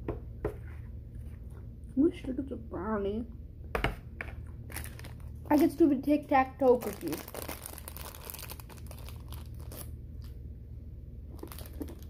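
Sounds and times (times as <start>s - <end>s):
plastic wrapper crinkling: 4.7s - 5.9s, 6.6s - 10.4s, 11.3s - 12.0s.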